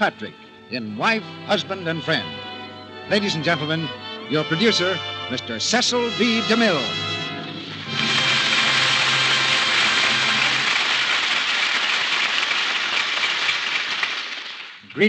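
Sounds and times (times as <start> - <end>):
orchestral chord: 0.6 - 11.0
studio audience applauding: 7.7 - 14.9.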